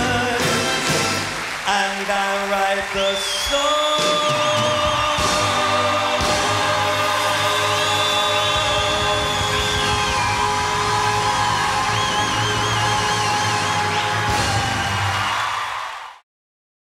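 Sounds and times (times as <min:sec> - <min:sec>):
drums and cymbals rolling: 0:03.6 - 0:15.5.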